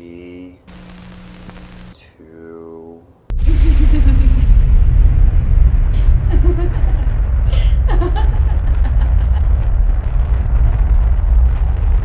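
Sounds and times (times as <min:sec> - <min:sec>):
deep rumble: 0:03.3 - 0:12.0.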